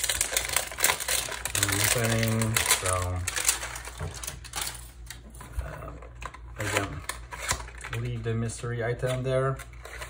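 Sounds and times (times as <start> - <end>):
cardboard and packaging rustling: 0.0 - 10.0.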